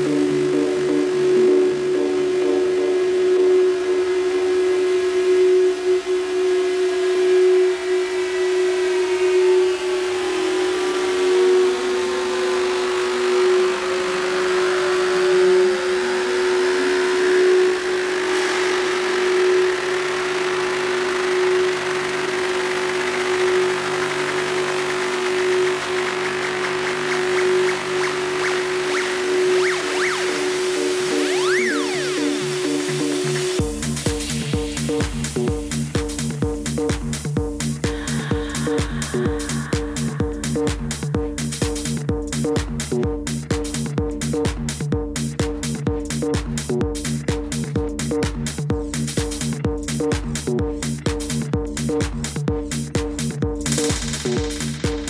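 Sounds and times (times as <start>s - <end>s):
gliding synth tones: 0.0s - 33.6s
synth drone: 0.0s - 44.4s.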